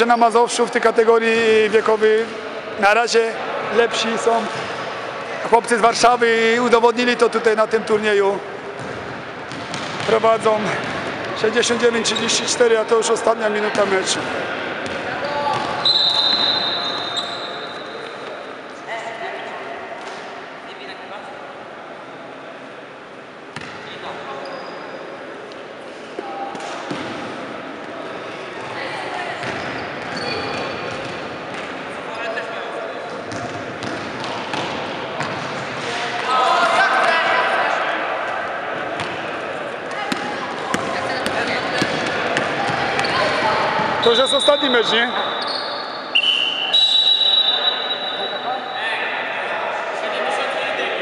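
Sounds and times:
basketball bouncing on court: 8.8s - 11.3s, 14.8s - 15.8s, 23.6s - 23.8s, 26.9s - 27.2s, 29.4s - 31.7s, 33.3s - 35.5s, 40.1s - 43.3s
sneaker squeaks: 11.6s - 12.6s, 14.8s - 18.5s, 23.6s - 25.2s, 29.3s - 31.7s, 40.0s - 48.9s
referee's whistle: 15.8s - 18.2s, 44.0s - 48.9s.

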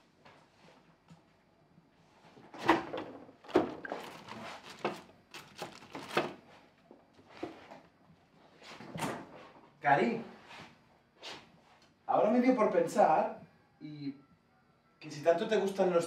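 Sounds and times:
refrigerator door opening: 2.5s - 6.4s.

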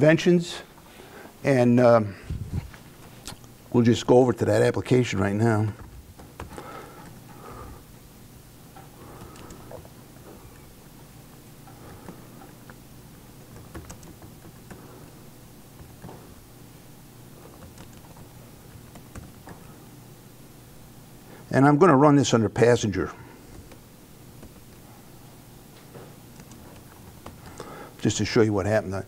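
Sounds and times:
low steady hum: 0.0s - 29.0s
laptop keyboard typing: 5.8s - 7.2s, 9.1s - 9.9s, 11.6s - 12.8s, 13.4s - 15.0s, 15.7s - 16.4s, 17.4s - 19.8s, 26.3s - 27.7s.

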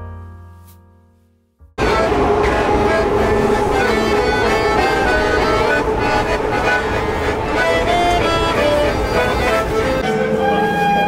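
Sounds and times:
accordion playing chords: 1.8s - 11.0s
moving train rumble: 1.8s - 11.0s.

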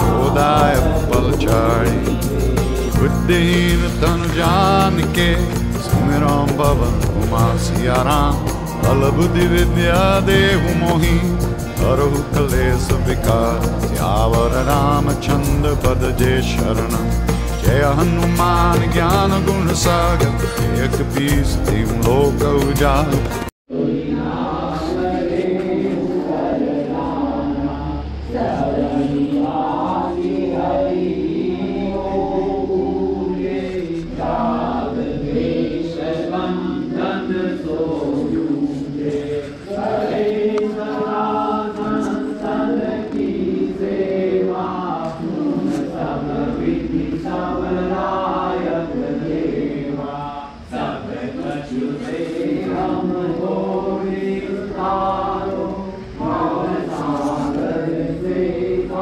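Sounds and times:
group chanting a hymn: 0.0s - 59.0s.

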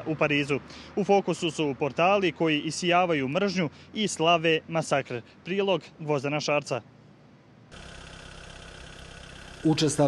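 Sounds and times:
vehicle engine idling: 7.7s - 10.0s.

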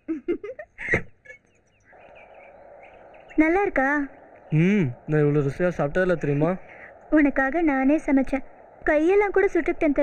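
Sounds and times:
steady outdoor hiss: 0.0s - 10.0s
small birds chirping: 0.6s - 10.0s.

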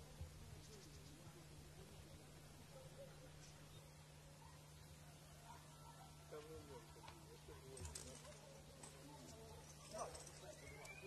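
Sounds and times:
faint distant voices: 0.0s - 11.0s
low steady hum: 0.0s - 11.0s.

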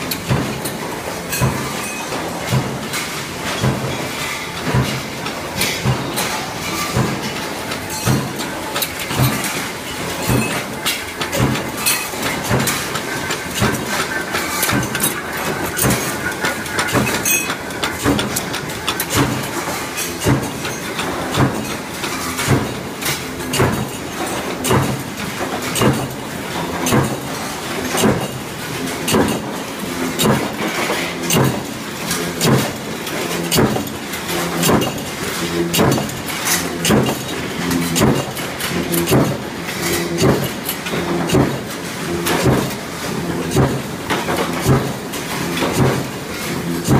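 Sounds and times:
punch presses stamping metal: 4.6s - 42.8s.

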